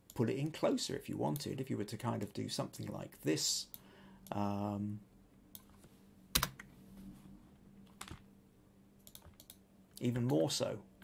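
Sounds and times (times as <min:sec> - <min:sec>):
faint low hum: 0:00.0 - 0:11.0
computer keys clicking: 0:09.0 - 0:09.6.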